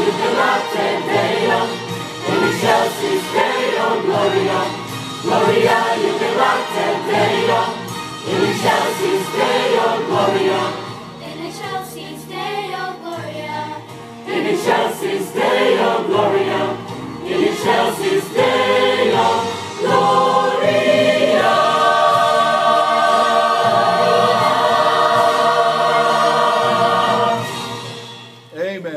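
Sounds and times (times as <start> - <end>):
mixed choir singing: 0.0 - 13.6, 14.2 - 28.1.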